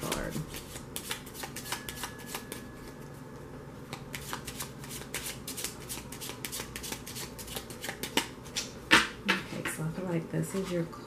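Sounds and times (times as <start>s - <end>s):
cards being shuffled: 0.0s - 2.6s, 3.9s - 8.7s.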